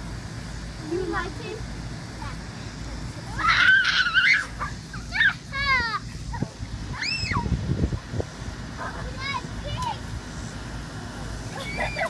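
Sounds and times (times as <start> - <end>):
children shrieking and squealing: 3.3 - 7.6, 11.5 - 12.0.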